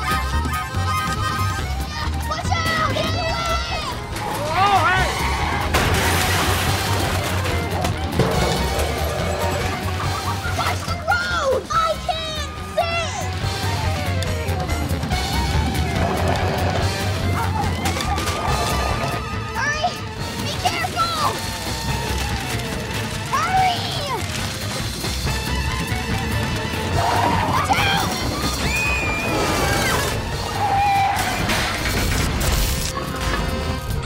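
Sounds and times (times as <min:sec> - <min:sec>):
comedic score music: 0:00.0 - 0:34.0
people shouting: 0:02.3 - 0:05.8, 0:26.8 - 0:31.8
crashes and clattering of metal cans: 0:02.6 - 0:11.0, 0:20.4 - 0:34.0.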